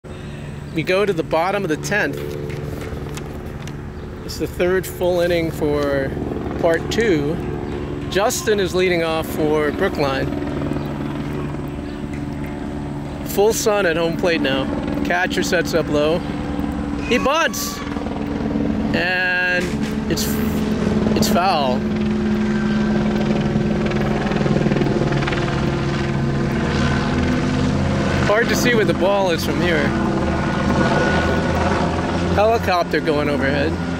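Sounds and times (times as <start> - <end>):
helicopter flying overhead: 0.0 - 33.9
steady mechanical hum: 0.0 - 33.9.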